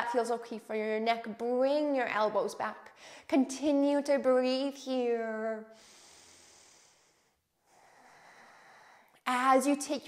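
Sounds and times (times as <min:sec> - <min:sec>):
faint breathing: 0:05.7 - 0:09.2.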